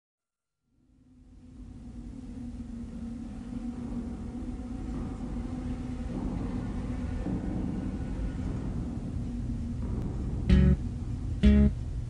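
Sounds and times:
steady low tone: 0.7s - 12.0s
low rumbling drone: 0.9s - 12.0s.

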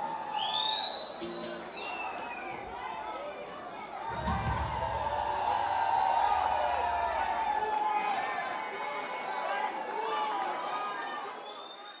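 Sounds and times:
crowd chatter: 0.0s - 11.4s.

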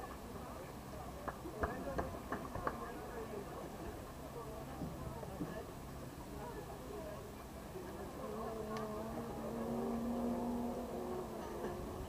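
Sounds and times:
voices talking: 1.5s - 12.0s.

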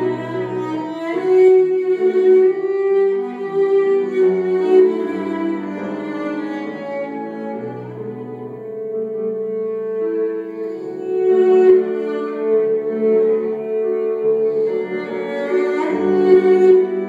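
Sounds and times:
cello melody: 0.0s - 17.0s
piano accompaniment: 0.0s - 17.0s.

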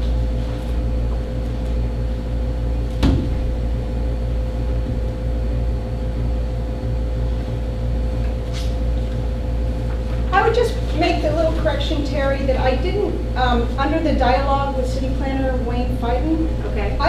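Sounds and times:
air conditioner humming: 0.0s - 17.0s
faint constant whine: 0.0s - 17.0s.

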